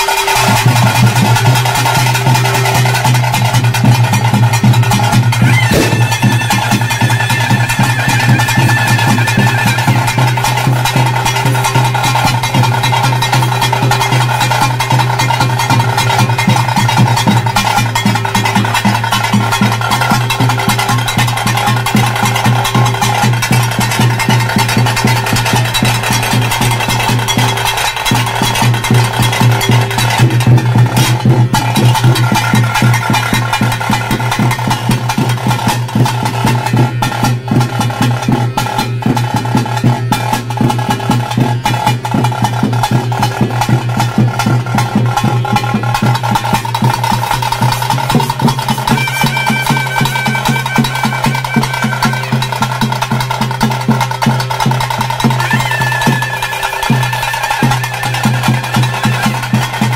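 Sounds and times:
fast dense drumming: 0.0 - 59.9.

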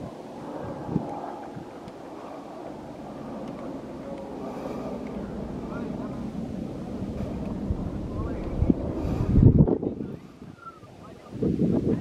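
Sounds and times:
faint indistinct voices: 0.0 - 12.0
wind buffeting microphone: 0.0 - 12.0.

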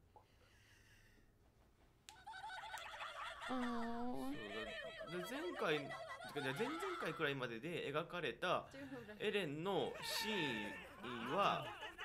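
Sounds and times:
high-pitched giggling voice: 3.4 - 4.9.

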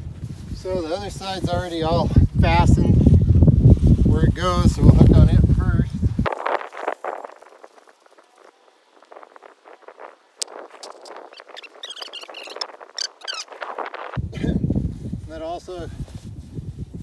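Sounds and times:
hammock rustling: 0.0 - 15.3
wind buffeting microphone: 0.0 - 17.0
short high squeaks: 9.1 - 14.2.

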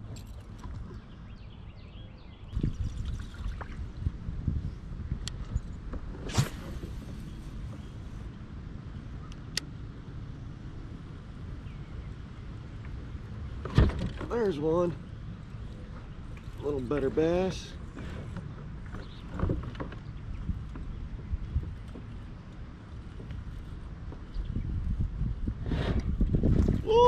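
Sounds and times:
low rumble of wind and water: 0.0 - 27.0
sharp crack: 6.2 - 6.8.

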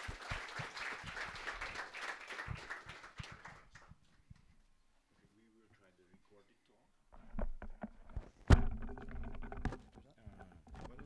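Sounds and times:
microphone handling knock: 7.2 - 9.8.

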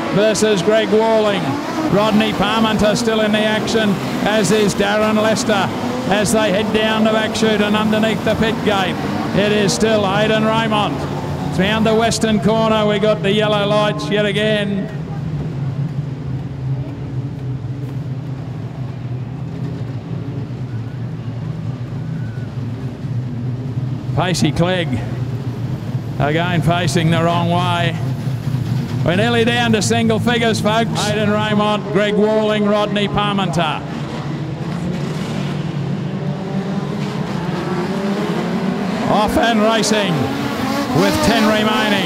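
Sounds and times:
race car engines droning: 0.0 - 42.0.

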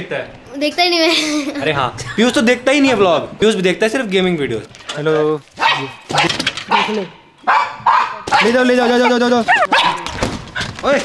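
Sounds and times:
small dog barking and yipping: 5.6 - 10.7.

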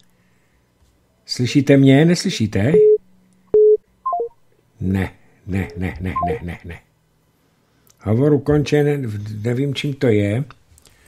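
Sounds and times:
low telephone beep with click: 3.6 - 4.3.

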